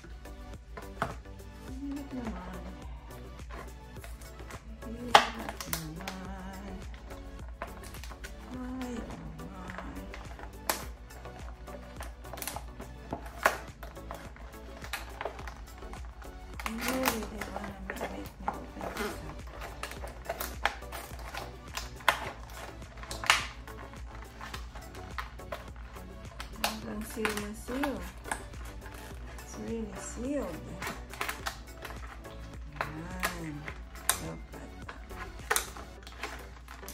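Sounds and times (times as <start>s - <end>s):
background music: 0.0s - 36.9s
scissors cutting plastic: 0.0s - 36.9s.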